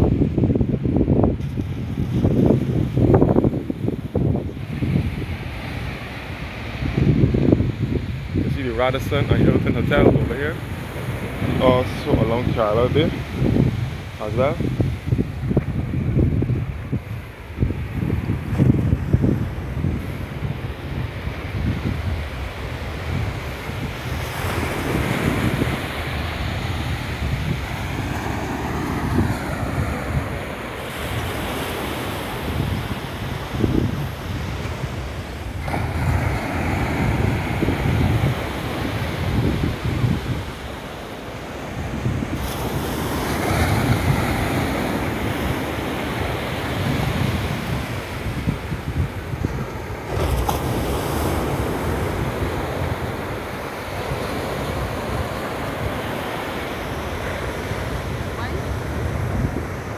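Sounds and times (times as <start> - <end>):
small waves washing on sand: 0.0 - 59.9
wind buffeting microphone: 0.0 - 59.9.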